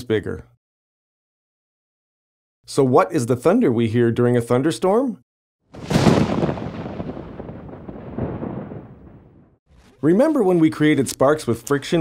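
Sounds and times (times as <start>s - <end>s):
rumbling thunder: 5.8s - 9.6s.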